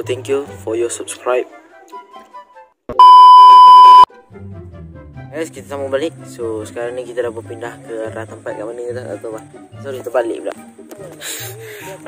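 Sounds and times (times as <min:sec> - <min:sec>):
electronic beep tone: 0:03.0 - 0:04.1.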